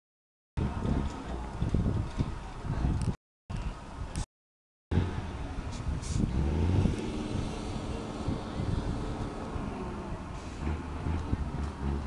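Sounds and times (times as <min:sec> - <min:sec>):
truck engine droning: 0:04.9 - 0:12.0.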